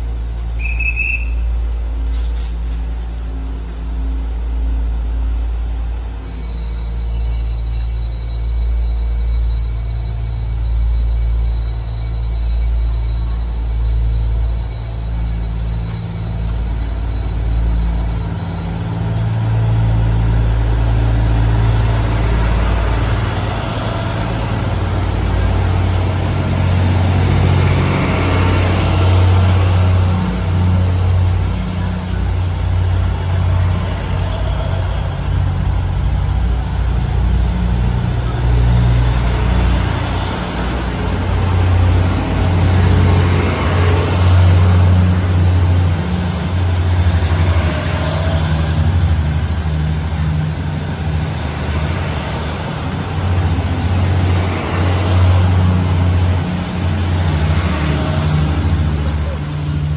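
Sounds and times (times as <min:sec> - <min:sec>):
diesel engine drone: 0:00.0 - 0:59.9
train cars rolling on rails: 0:00.0 - 0:59.9.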